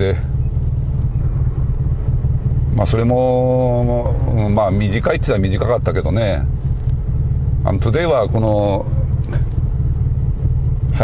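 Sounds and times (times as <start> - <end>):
car interior road and engine rumble: 0.0 - 11.0.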